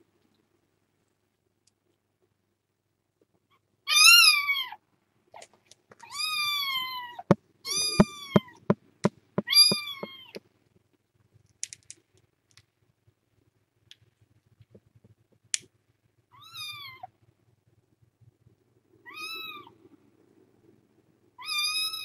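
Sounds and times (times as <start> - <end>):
kitten meowing: 9.4 - 10.4, 21.4 - 22.0.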